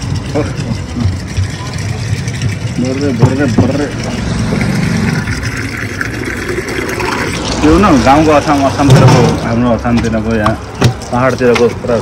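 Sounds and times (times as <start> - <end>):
water running into plastic jug: 0.0 - 12.0.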